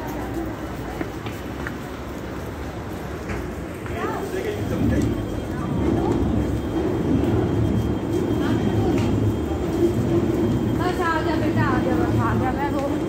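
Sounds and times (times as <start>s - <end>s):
faint voices: 0.0s - 13.0s
heavy vehicles rumbling: 0.0s - 13.0s.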